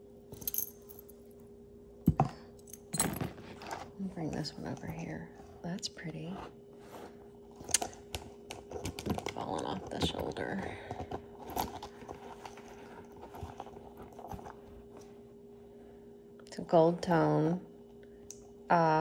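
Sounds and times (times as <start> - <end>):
faint steady hum: 0.0 - 19.0
necklace chain clinking: 0.3 - 1.1.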